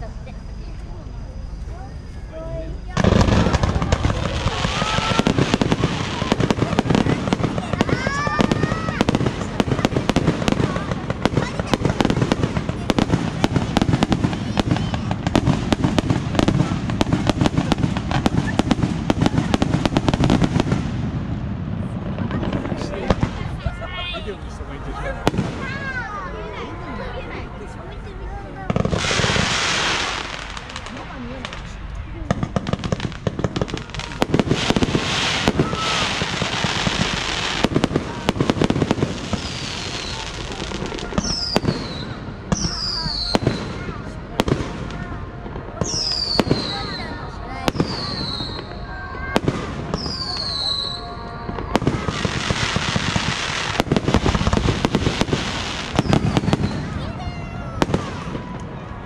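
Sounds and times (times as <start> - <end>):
firework crackling: 0.0 - 59.0
firework bangs: 1.8 - 24.2, 24.8 - 26.6, 27.9 - 59.0
firework whistles falling in pitch: 34.7 - 37.7, 39.2 - 43.9, 45.8 - 48.9, 49.9 - 57.0.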